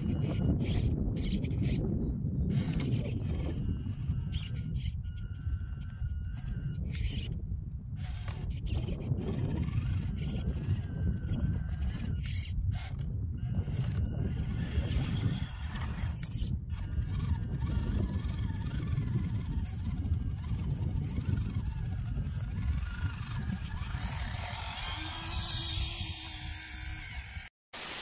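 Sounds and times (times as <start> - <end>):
wind rumbling on microphone: 0.0 - 27.5
loud static hiss: 27.8 - 28.0.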